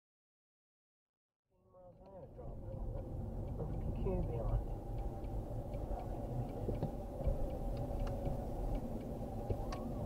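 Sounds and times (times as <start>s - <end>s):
car engine and road noise: 1.8s - 10.0s.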